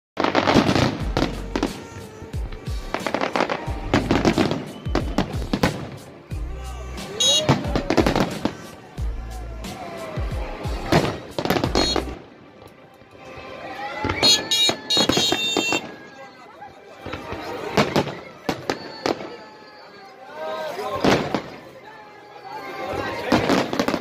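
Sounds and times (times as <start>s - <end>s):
fireworks bangs: 0.2s - 6.3s, 6.9s - 8.9s, 9.7s - 12.2s, 14.0s - 16.2s, 17.0s - 19.9s, 21.0s - 21.7s, 22.9s - 24.0s
fireworks crackling: 0.2s - 24.0s.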